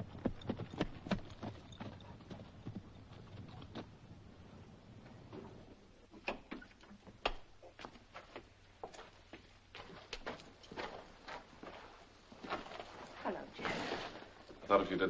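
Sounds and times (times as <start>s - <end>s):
horse hooves clopping: 0.0s - 13.6s.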